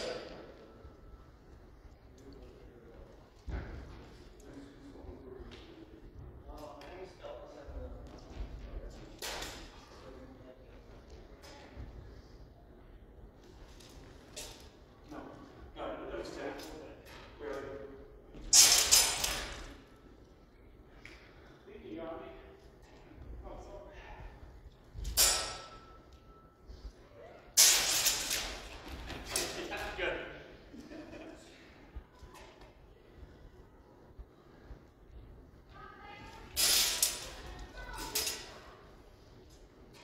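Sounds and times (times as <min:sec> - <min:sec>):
steel blades clashing: 0:25.2 - 0:26.0, 0:27.6 - 0:28.6, 0:36.6 - 0:37.4.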